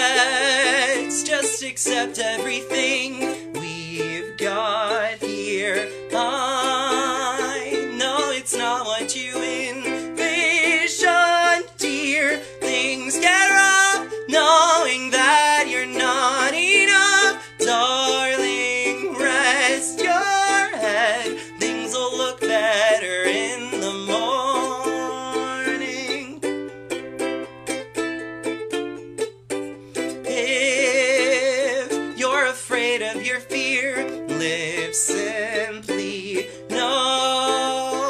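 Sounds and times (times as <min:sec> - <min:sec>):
man singing with vibrato: 0:00.0 - 0:26.7, 0:30.0 - 0:38.0
ukulele strumming: 0:00.0 - 0:38.0.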